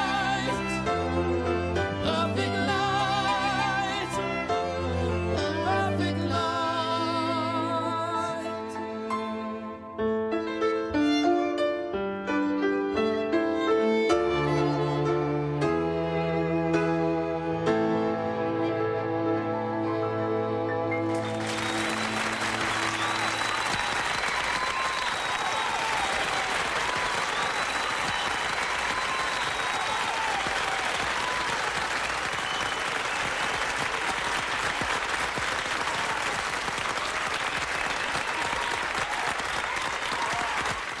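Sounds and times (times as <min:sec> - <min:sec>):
audience applause: 0:21.1 - 0:41.0.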